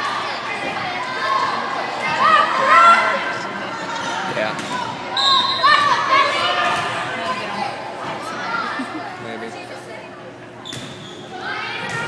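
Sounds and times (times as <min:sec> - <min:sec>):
girls cheering and chanting: 0:00.0 - 0:03.4
whistle blast: 0:05.1 - 0:05.8.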